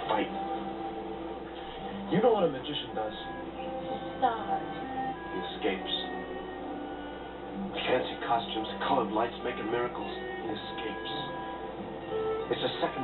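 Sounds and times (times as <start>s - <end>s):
background music of held notes: 0.0s - 13.0s.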